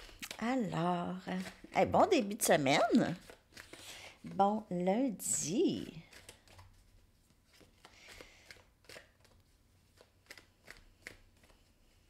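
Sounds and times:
cards being shuffled: 0.0s - 4.3s, 5.3s - 12.0s.

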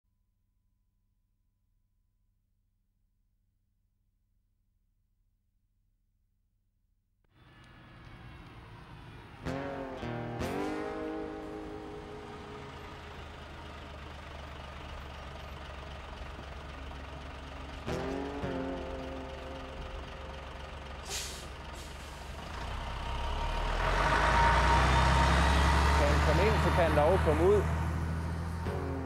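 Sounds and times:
bus diesel engine: 7.4s - 29.0s
strummed guitar chord: 9.7s - 13.1s, 17.8s - 20.6s, 28.6s - 29.0s
bus air brakes hissing: 21.0s - 22.4s.

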